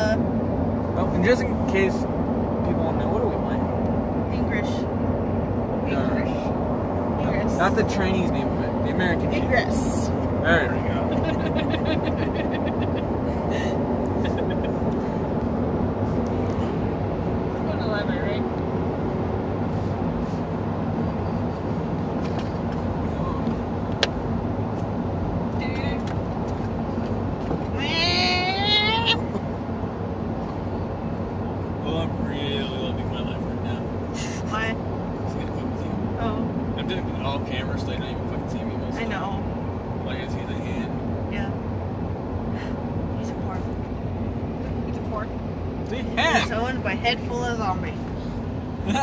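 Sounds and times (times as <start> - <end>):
car road and engine noise: 0.0 - 49.0
voices: 27.8 - 29.4, 40.1 - 41.6, 45.9 - 48.0.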